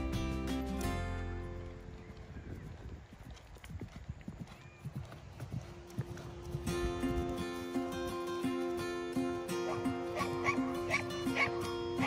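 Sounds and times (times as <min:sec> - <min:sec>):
music with held notes: 0:00.0 - 0:01.9, 0:06.7 - 0:12.0
horse hooves cantering on grass: 0:00.0 - 0:12.0.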